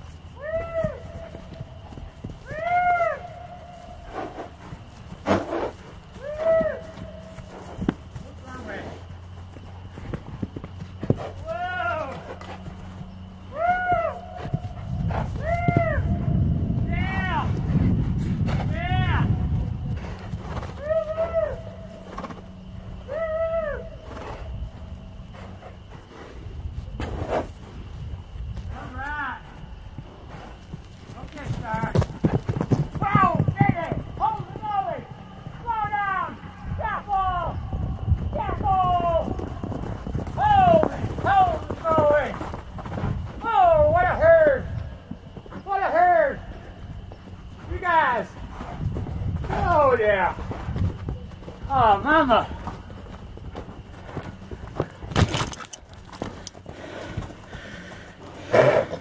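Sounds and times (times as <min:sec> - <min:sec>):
horse galloping on grass: 0:00.0 - 0:59.0.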